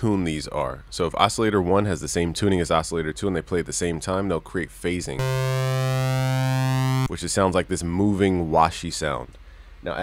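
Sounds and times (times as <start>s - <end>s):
synthesizer holding steady note: 5.2s - 7.1s.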